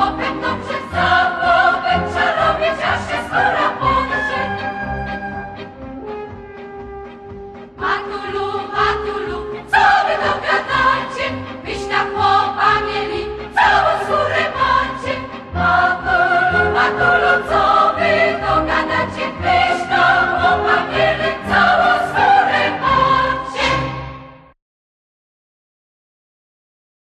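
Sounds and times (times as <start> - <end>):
choir singing: 0.0 - 5.6, 7.8 - 24.5
instrumental accompaniment: 0.0 - 24.5.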